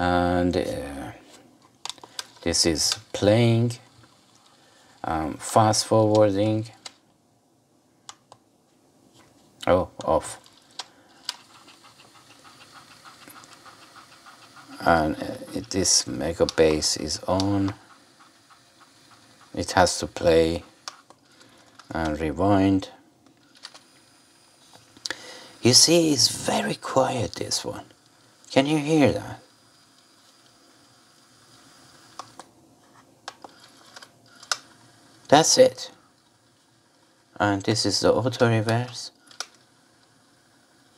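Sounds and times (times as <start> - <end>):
cassette tape rewinding whir: 1.9 - 6.9, 10.0 - 22.8, 23.4 - 32.5, 33.3 - 40.9
cassette player fast-forwarding: 10.0 - 21.1.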